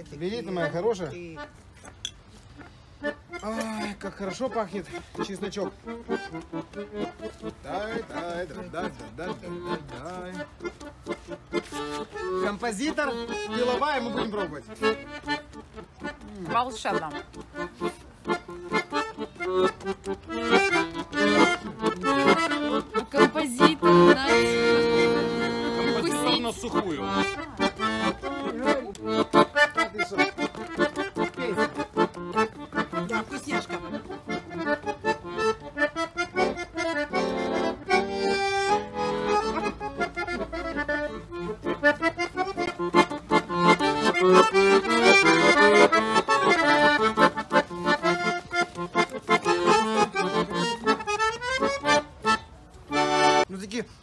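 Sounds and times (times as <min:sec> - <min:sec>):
piano accordion playing lively tune: 0:00.0 - 0:54.0.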